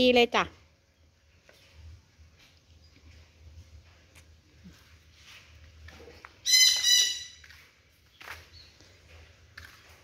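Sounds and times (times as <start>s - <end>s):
parrot squawk: 6.4s - 7.4s.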